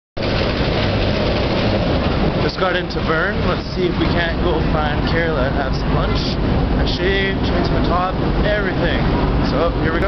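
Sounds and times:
loud steady rumbling: 0.2 - 10.0.

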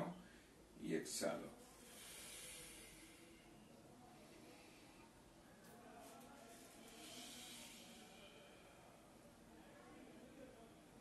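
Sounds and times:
faint breath of air: 1.6 - 5.3, 6.7 - 9.2.

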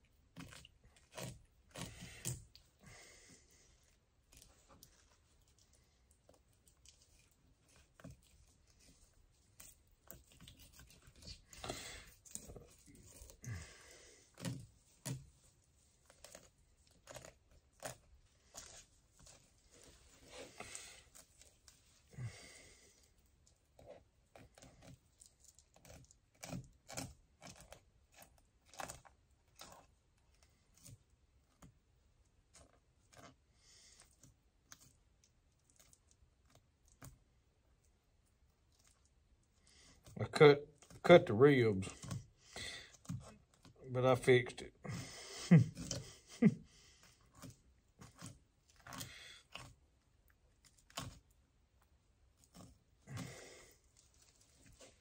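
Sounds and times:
knife clicking and scraping fish: 0.3 - 2.6, 14.3 - 15.3, 16.1 - 19.4, 23.8 - 29.9, 47.0 - 49.8.

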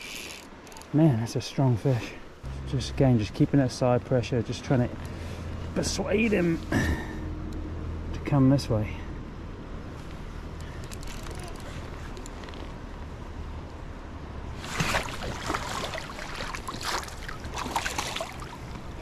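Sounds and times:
shallow river rushing: 9.8 - 19.0
fish splashing at water surface: 14.6 - 18.9.

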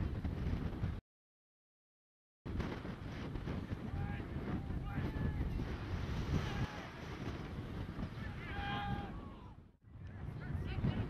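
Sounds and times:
wind buffeting microphone: 0.0 - 1.0, 2.5 - 11.0
player shouting: 8.2 - 9.6.

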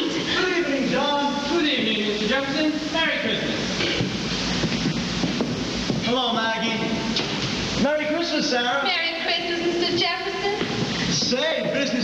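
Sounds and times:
actors' voices on stage: 5.9 - 12.0.

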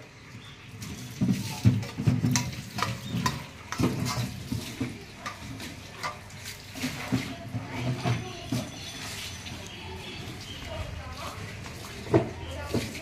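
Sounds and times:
metal spatula scraping steel: 1.8 - 7.2.

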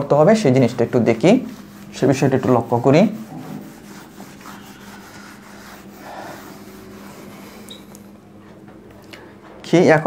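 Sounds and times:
low steady hum: 0.0 - 10.0
quiet rubbing against surface: 0.2 - 8.7.

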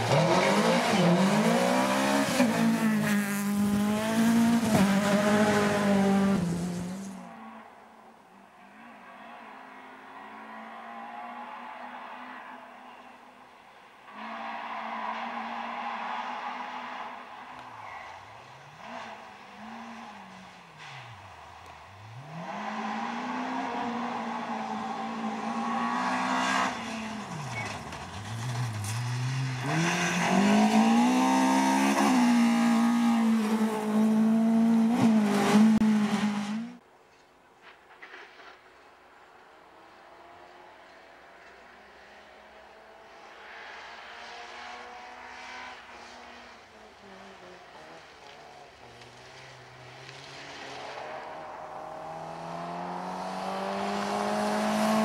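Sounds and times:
rally car engine revving: 0.0 - 7.2, 21.7 - 36.8, 43.6 - 55.0.

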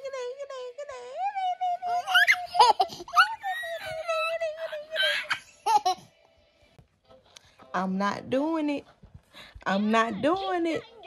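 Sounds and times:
toddler laughing and giggling: 1.9 - 6.0.

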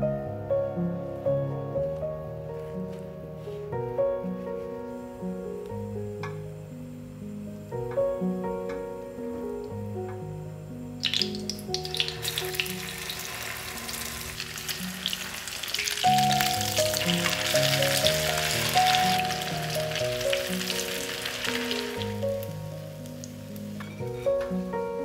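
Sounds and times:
background music: 0.0 - 25.0
food sizzling in oil: 11.0 - 24.0.

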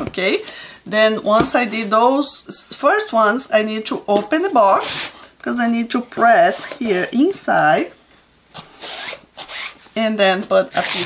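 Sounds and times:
masking tape pulled off roll: 10.7 - 11.0.

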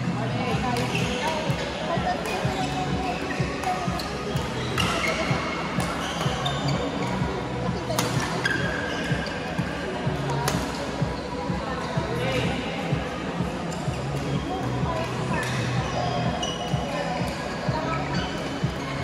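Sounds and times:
music: 0.0 - 19.0
shoes squeaking on court: 0.5 - 19.0.

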